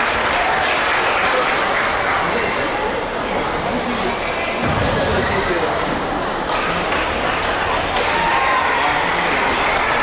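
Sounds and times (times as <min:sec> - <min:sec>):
echoing voices and chatter: 0:00.0 - 0:10.0.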